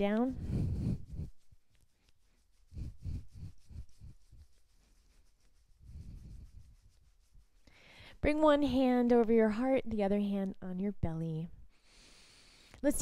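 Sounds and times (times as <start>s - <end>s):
hands rubbing bare arms: 0.0s - 7.8s.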